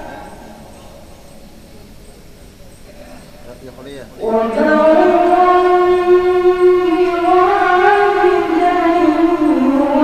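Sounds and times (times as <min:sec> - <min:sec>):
boy chanting: 0:04.2 - 0:10.0.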